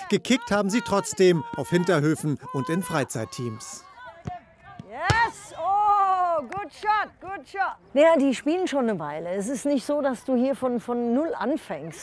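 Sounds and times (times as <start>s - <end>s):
football kick thud: 4.2s - 5.4s.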